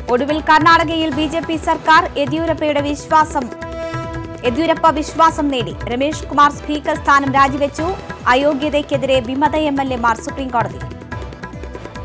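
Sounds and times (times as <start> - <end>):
background music with percussive beats: 0.0 - 12.0.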